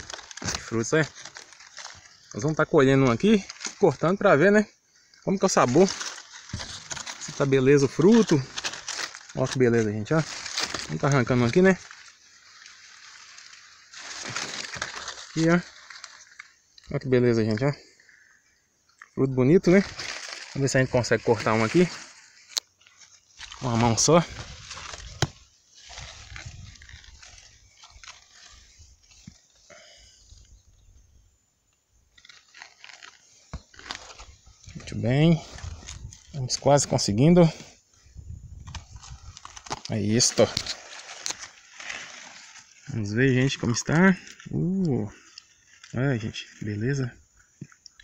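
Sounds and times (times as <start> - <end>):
knife crunching into pod husk: 0.0 - 3.9, 5.6 - 9.6, 10.2 - 16.6, 32.2 - 36.2, 38.6 - 42.8
low steady hiss: 0.0 - 48.0
rustle of leaves and branches: 0.0 - 48.0.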